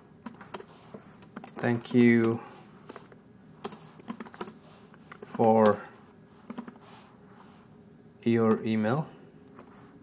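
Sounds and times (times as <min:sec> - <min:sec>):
keyboard typing: 0:00.2 - 0:05.8, 0:06.5 - 0:06.8, 0:08.4 - 0:08.8.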